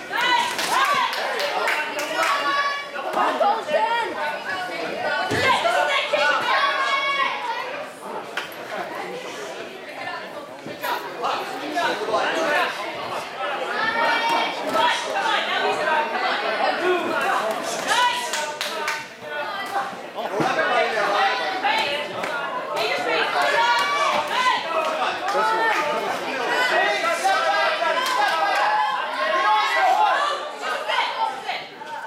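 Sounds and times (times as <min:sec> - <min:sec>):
crowd chatter: 0:00.0 - 0:32.0.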